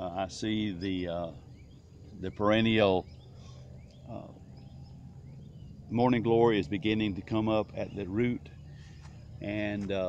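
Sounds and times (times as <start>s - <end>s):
man saying uh: 0.0s - 1.3s, 9.4s - 10.0s
bird chirps: 0.0s - 10.0s
low steady hum: 0.0s - 10.0s.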